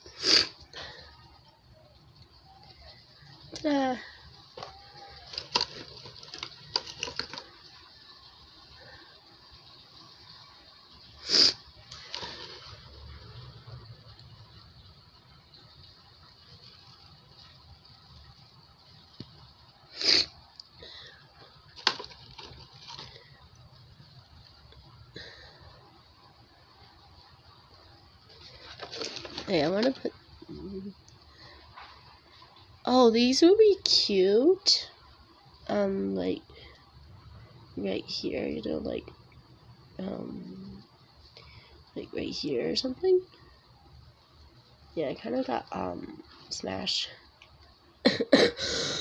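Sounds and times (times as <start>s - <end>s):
plastic packaging rustling: 4.4s - 7.7s, 11.9s - 12.9s, 21.4s - 23.5s, 28.3s - 30.2s
objects clicking and tapping: 4.6s - 7.6s, 21.8s - 23.2s.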